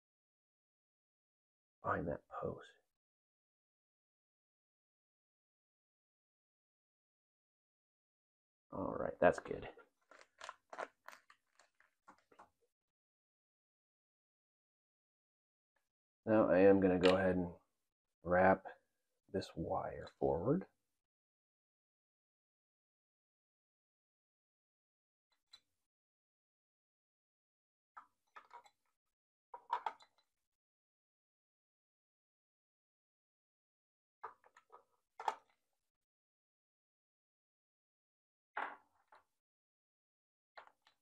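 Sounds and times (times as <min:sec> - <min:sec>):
crunching handling noises: 0:09.4 - 0:12.5
small clicks and rustles: 0:09.8 - 0:12.6, 0:28.0 - 0:28.9, 0:29.6 - 0:30.3, 0:34.2 - 0:35.6.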